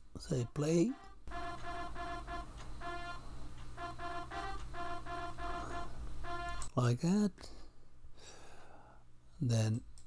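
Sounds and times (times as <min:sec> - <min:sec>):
faint low hum: 0:00.0 - 0:10.0
trumpet melody: 0:00.3 - 0:06.8.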